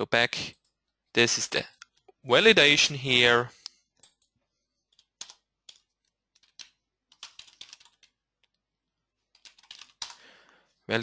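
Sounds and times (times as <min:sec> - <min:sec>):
typing on computer keyboard: 0:04.9 - 0:08.6, 0:09.3 - 0:10.2.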